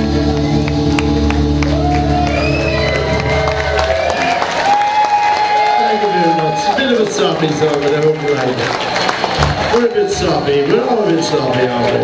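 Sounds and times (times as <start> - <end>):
audience cheering and clapping: 0.0 - 12.0
audience whistles: 0.2 - 6.8.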